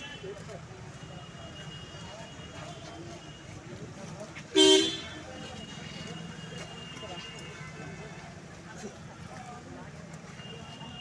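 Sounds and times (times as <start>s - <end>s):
murmur of voices: 0.0s - 11.0s
vehicle horn honk: 4.6s - 5.1s.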